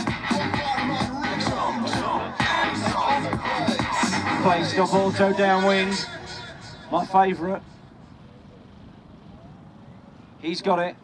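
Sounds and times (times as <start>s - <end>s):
distant model helicopter rotor: 4.8s - 11.0s.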